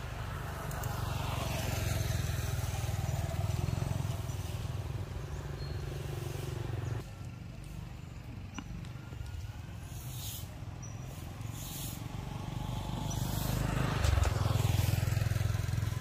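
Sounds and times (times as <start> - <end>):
vehicle engine passing with whine: 0.0 - 16.0.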